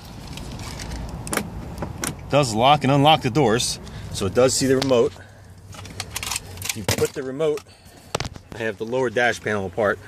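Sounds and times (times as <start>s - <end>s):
handling noise: 4.6s - 9.0s.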